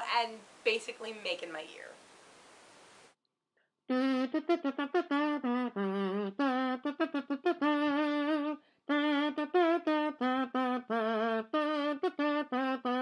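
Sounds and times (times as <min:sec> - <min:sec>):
person humming a tune: 0:03.9 - 0:13.0.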